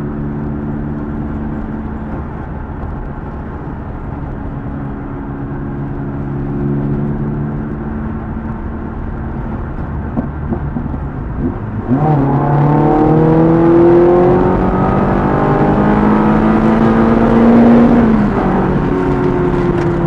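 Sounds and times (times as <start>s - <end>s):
car engine and road noise: 0.0s - 20.0s.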